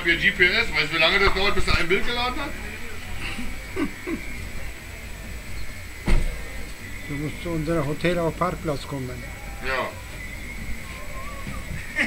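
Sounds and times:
sudden thump: 6.0s - 6.4s.

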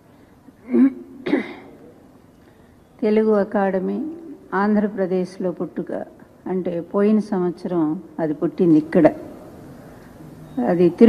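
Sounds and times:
woman clearing her throat: 0.6s - 1.8s.

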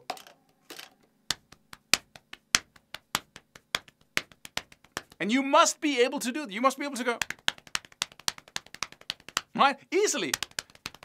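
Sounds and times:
hands tapping rhythmically: 1.2s - 11.0s.

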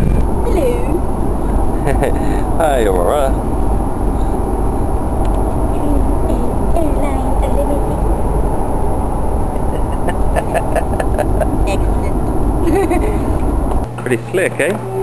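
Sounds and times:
faint voices: 0.0s - 3.4s, 5.4s - 8.4s, 9.4s - 13.4s
road rumble inside car: 0.0s - 15.0s
steady low hum: 0.0s - 15.0s.

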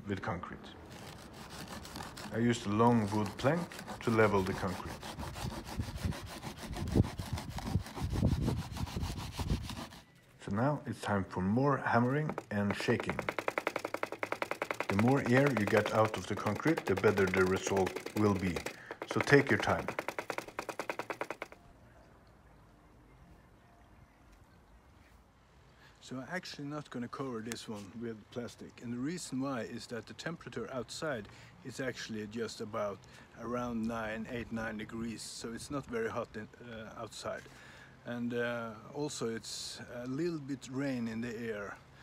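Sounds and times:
plank scraping wet concrete: 0.9s - 10.0s, 11.9s - 21.6s
sharp knock: 12.3s - 21.6s.

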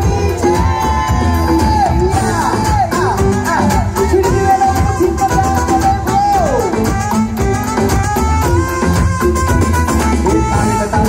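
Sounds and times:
live band music with bass beat: 0.0s - 11.0s.

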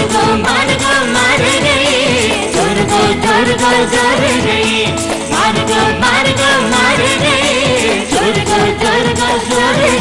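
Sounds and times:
drum kit and percussion: 0.0s - 10.0s.

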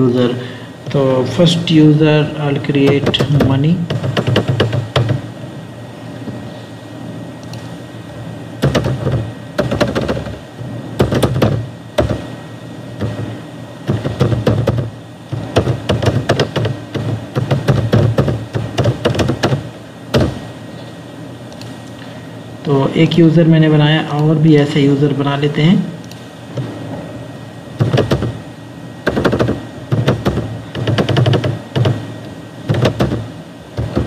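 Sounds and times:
keyboard typing and clicking: 2.8s - 5.2s, 8.6s - 10.4s, 13.9s - 19.6s, 29.1s - 32.0s, 32.7s - 33.2s.

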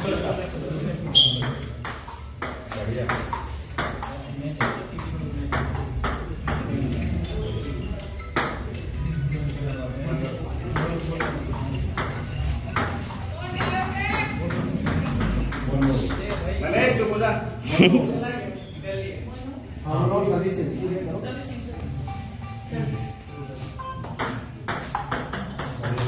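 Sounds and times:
murmur of voices: 0.0s - 26.0s.

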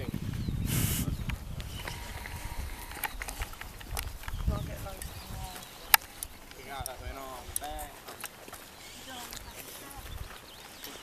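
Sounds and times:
low microphone rumble: 0.0s - 5.8s
footsteps on dirt path: 0.0s - 11.0s.

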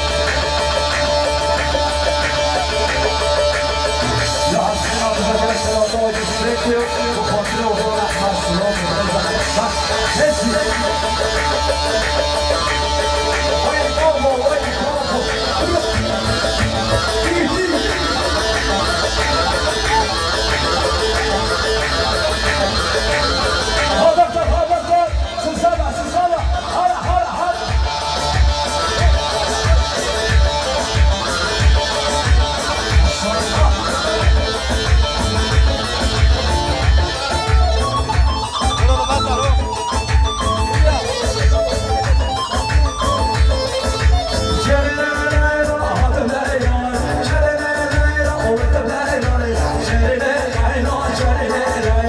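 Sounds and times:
keyboard plucked melody: 0.0s - 52.0s
steady beat: 0.0s - 52.0s.

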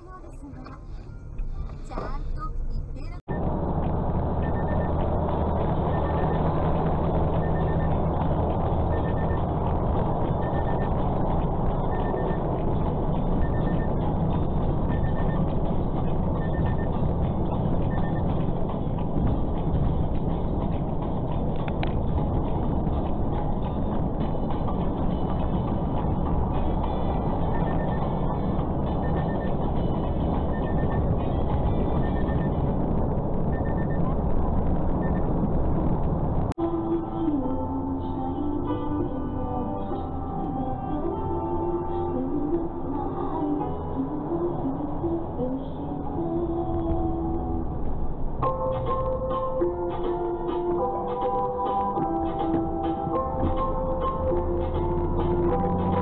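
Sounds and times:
truck engine and road noise: 0.0s - 56.0s
faint electronic beeps: 0.2s - 18.6s, 27.1s - 35.5s.

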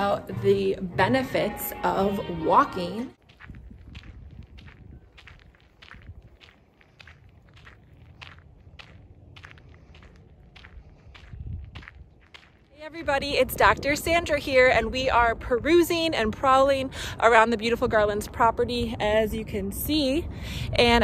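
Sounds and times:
footsteps on gravel: 1.9s - 15.2s
low rumble: 3.1s - 16.3s.

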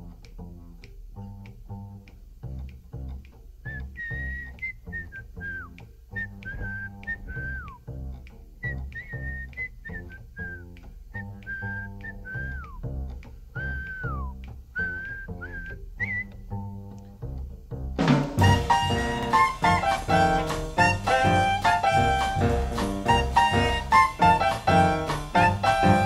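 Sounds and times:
drums with cymbal ticks: 0.0s - 17.1s, 17.7s - 26.0s
walking double bass: 0.0s - 26.0s
person whistling jazz melody: 2.5s - 17.0s, 18.4s - 26.0s.

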